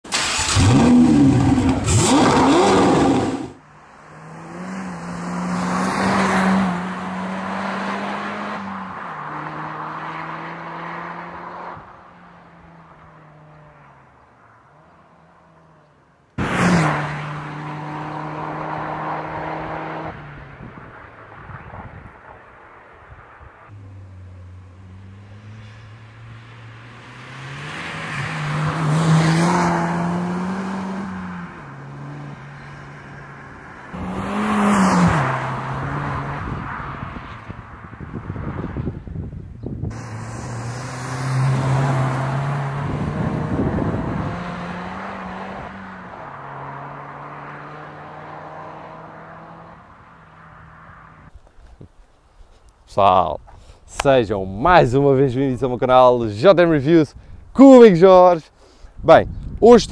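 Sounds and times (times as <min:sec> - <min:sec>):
car engine revving: 0:00.1 - 0:11.8, 0:16.4 - 0:20.4, 0:23.7 - 0:37.0, 0:39.9 - 0:51.3
car driving by: 0:16.4 - 0:39.0, 0:39.9 - 0:51.3.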